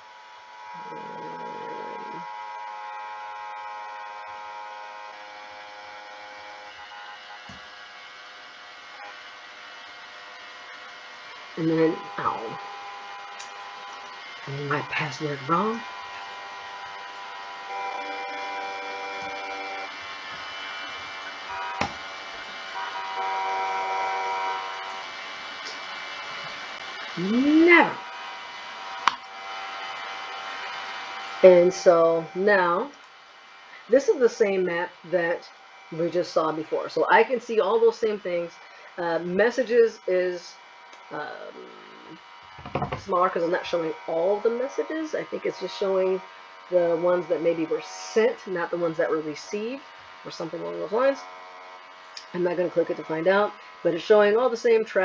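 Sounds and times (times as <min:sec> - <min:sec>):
faint constant tones: 0:00.0 - 0:55.0
steady electrical hum: 0:00.0 - 0:55.0.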